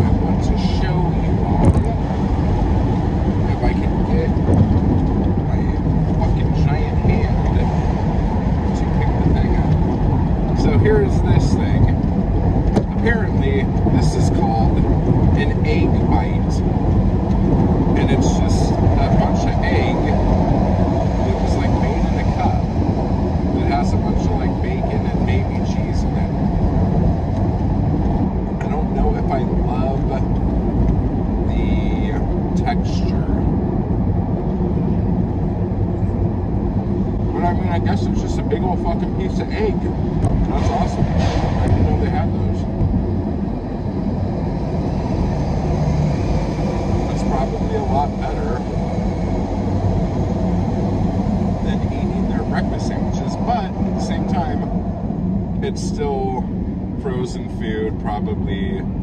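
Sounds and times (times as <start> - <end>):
car cabin road and engine rumble: 0.0 - 59.0.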